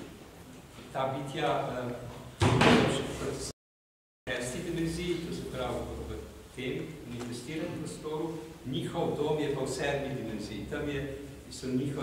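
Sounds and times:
loud thud ringing in room: 2.4 - 3.0.

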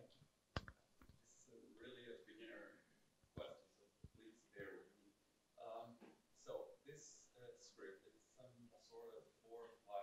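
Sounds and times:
faint distant speech: 5.6 - 10.0.

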